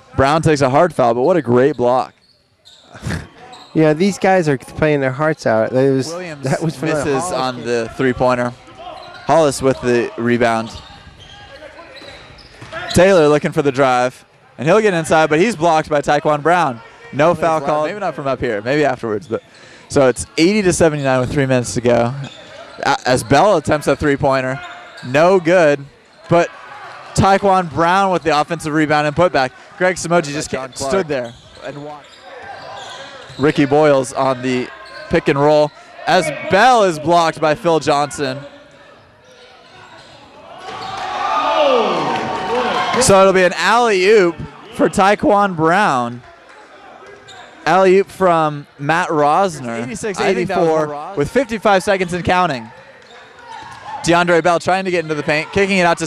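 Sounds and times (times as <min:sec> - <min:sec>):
crowd voices: 0:00.0 - 0:56.0
gym hall noise: 0:00.0 - 0:56.0.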